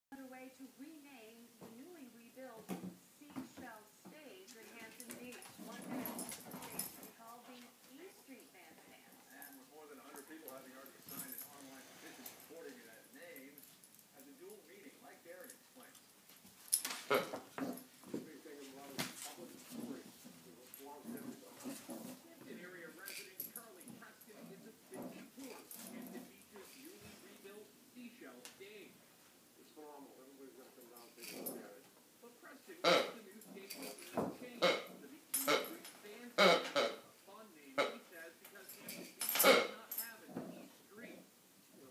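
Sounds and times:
dog collar chain jingling: 0:04.5 - 0:27.6, 0:30.6 - 0:31.9, 0:32.6 - 0:36.7, 0:37.9 - 0:41.2.

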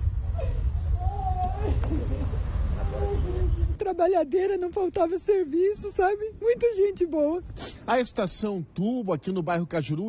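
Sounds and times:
wind rumble on microphone: 0:00.0 - 0:07.6
woman crying: 0:00.4 - 0:03.4.

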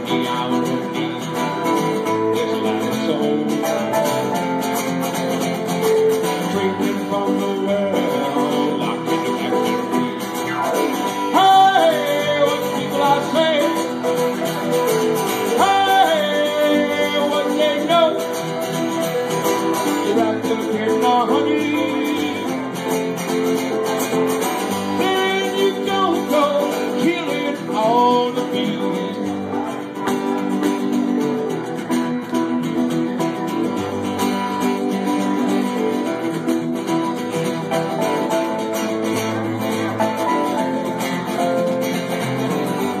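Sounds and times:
person singing: 0:00.0 - 0:04.4, 0:06.1 - 0:23.2, 0:24.6 - 0:30.1
acoustic guitar: 0:00.0 - 0:43.0
keyboard playing: 0:00.0 - 0:43.0.

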